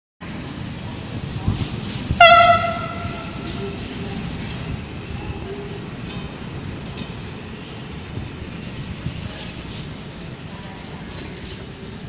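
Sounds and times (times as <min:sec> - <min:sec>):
train wheels rumbling on rails: 0:00.2 - 0:12.0
faint high squeal: 0:11.0 - 0:12.0.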